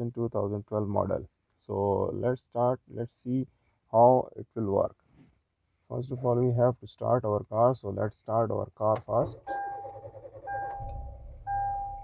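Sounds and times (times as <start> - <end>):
car engine starting and idling: 8.9 - 12.0
dashboard warning chime: 9.5 - 12.0.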